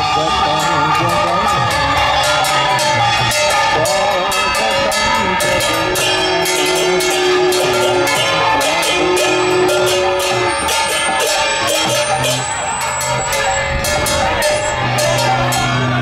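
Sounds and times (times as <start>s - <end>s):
brass hand cymbals struck: 0.0s - 15.9s
drumming: 0.0s - 16.0s
people singing: 0.0s - 16.0s.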